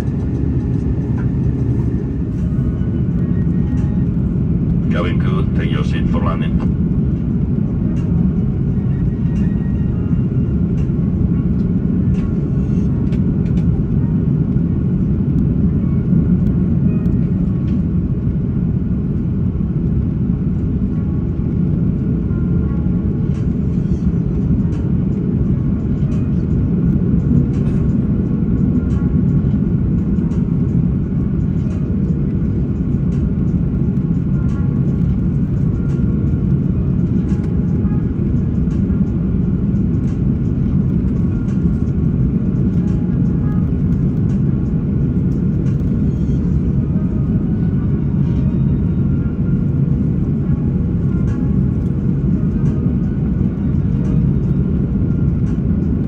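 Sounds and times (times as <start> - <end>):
aircraft engines rumbling: 0.0 - 56.0.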